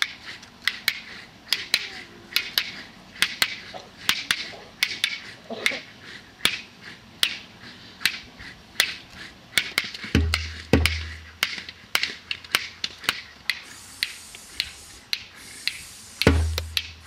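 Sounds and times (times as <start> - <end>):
sharp percussive clicks: 9.6 - 17.0.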